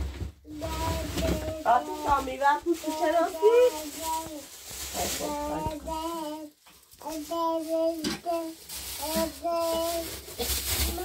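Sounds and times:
toddler babbling: 0:00.4 - 0:04.5, 0:05.1 - 0:11.0.

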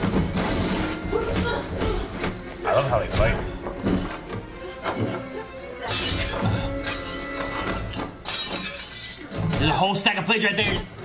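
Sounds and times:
background score music: 0:00.0 - 0:11.0
crockery shattering: 0:05.8 - 0:09.8.

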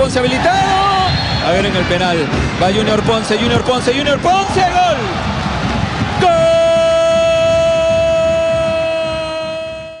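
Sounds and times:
commentator shouting goal cry: 0:00.0 - 0:05.2, 0:06.2 - 0:10.0.

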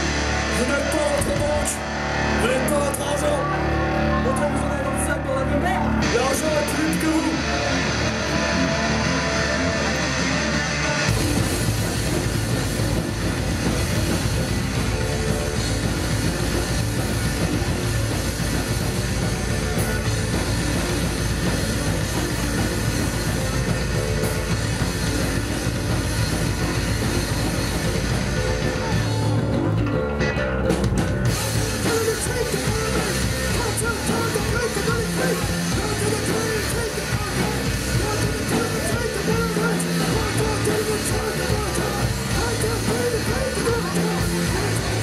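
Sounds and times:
punk band playing live: 0:00.0 - 0:45.0.

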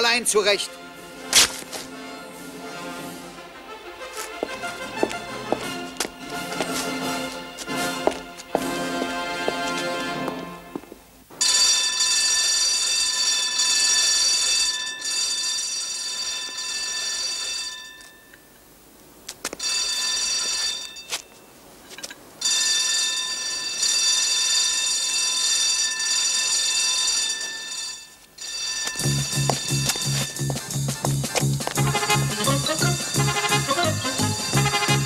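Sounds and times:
electric bell ringing: 0:11.4 - 0:18.5, 0:19.6 - 0:21.2, 0:22.4 - 0:30.8.

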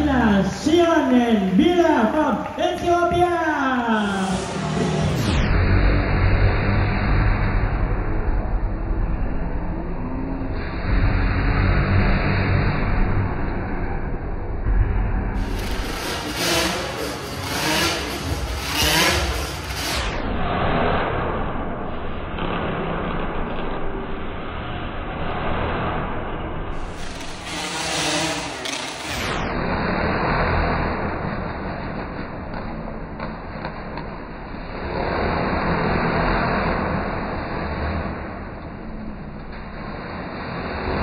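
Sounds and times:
motorcycle engines revving: 0:03.6 - 0:13.7, 0:15.3 - 0:21.6, 0:26.7 - 0:41.0
motorcycle engines running: 0:15.4 - 0:20.3.

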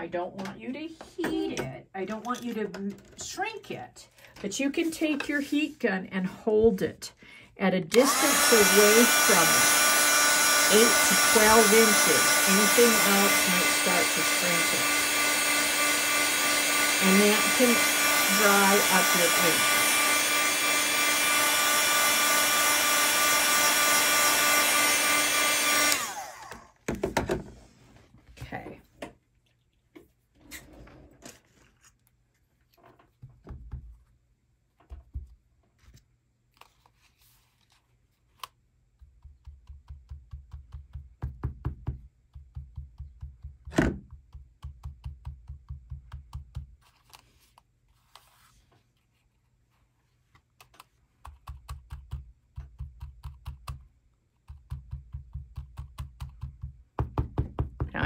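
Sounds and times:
heat gun blowing: 0:07.9 - 0:26.7.

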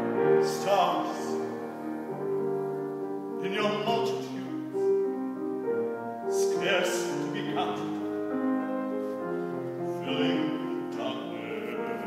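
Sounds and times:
person singing: 0:00.0 - 0:02.0, 0:03.3 - 0:05.0, 0:06.3 - 0:12.0
piano chords: 0:00.0 - 0:12.0.

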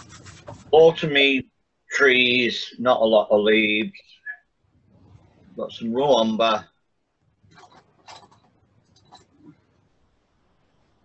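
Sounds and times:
paintbrush swishing in palette: 0:00.0 - 0:00.9.

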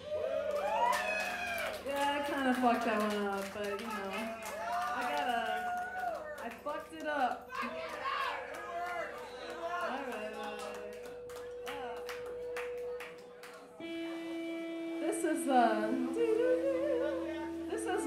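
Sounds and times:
murmur of bar crowd voices: 0:02.1 - 0:18.0
held musical note: 0:07.4 - 0:18.0.

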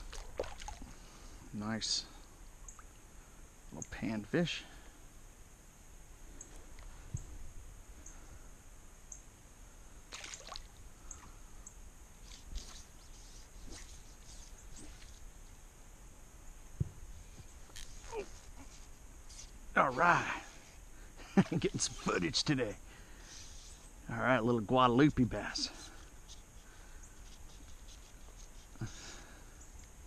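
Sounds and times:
creek water splashing: 0:00.0 - 0:01.2, 0:10.0 - 0:11.4
soft knock: 0:16.8 - 0:17.0.

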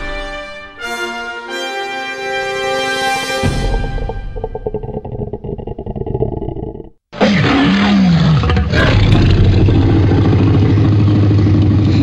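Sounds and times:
dramatic music: 0:00.0 - 0:04.8
monster roar and low growl: 0:03.4 - 0:12.0.

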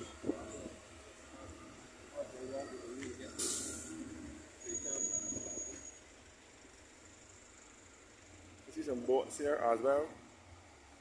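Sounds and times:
road traffic passing: 0:00.0 - 0:11.0
short hiss: 0:03.4 - 0:04.0
high whistling tone: 0:04.6 - 0:06.0.

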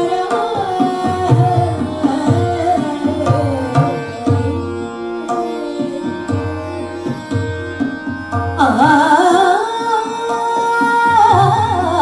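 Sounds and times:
tabla strokes: 0:00.0 - 0:12.0
tanpura drone: 0:00.0 - 0:12.0.

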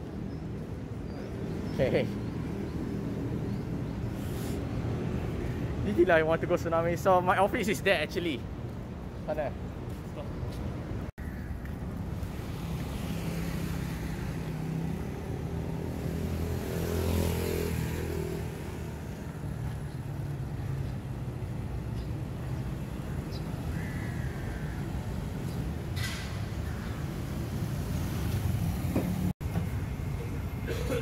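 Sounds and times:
road traffic: 0:00.0 - 0:31.0
vehicle passing close by: 0:12.5 - 0:19.1.

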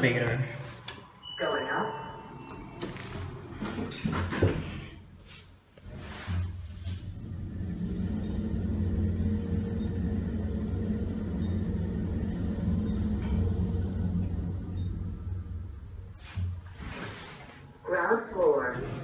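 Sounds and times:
elevator hum and rumble: 0:00.0 - 0:19.0.

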